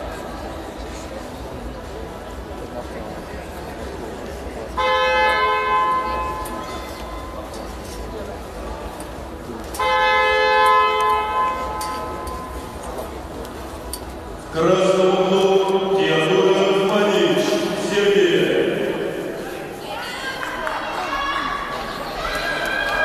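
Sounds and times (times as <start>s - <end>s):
murmur of sports hall: 0.0s - 23.0s
signal horn blasts: 9.8s - 12.2s.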